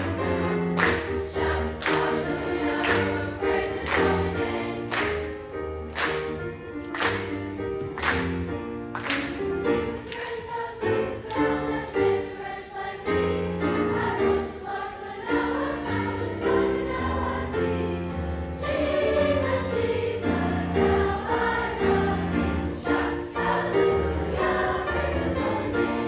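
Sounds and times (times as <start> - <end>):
choir singing gospel song: 0.0 - 6.4, 9.3 - 26.0
piano accompaniment: 0.0 - 26.0.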